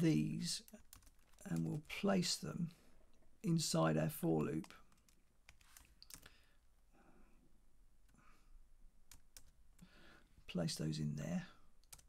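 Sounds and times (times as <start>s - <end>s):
keyboard clicks: 4.6s - 6.3s.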